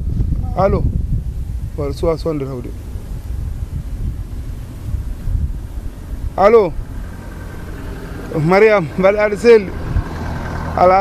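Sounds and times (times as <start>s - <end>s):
low uneven rumble: 0.0s - 11.0s.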